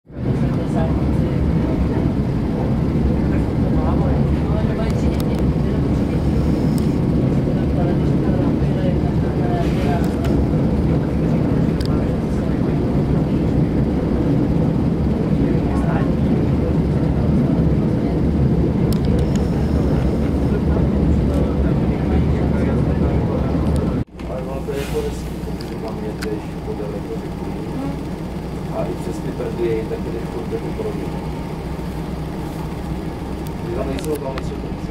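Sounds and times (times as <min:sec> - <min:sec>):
railcar engine low rumble: 0:00.1 - 0:34.9.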